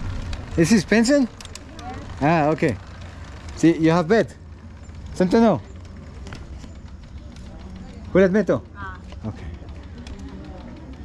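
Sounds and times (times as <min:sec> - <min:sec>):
faint distant voices: 0:04.8 - 0:11.0.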